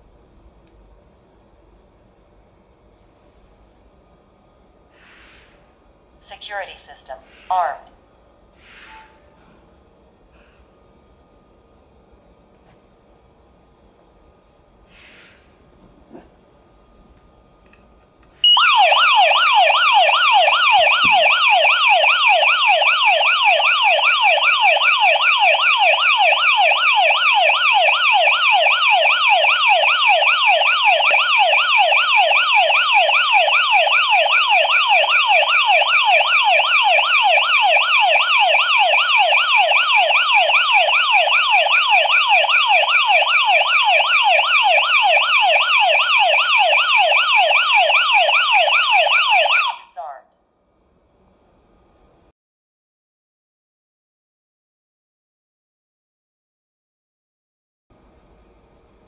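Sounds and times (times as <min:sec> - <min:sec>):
alarm siren rising sweep: 0:18.4 - 0:50.0.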